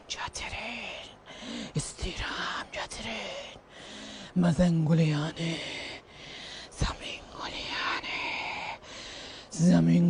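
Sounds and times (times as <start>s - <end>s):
person whispering: 0.0s - 3.7s, 4.3s - 8.8s, 9.5s - 10.0s.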